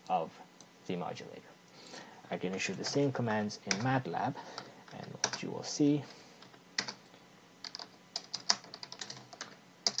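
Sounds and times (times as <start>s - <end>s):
computer keyboard typing: 3.7s - 4.0s, 5.0s - 5.5s, 6.8s - 7.0s, 7.6s - 10.0s.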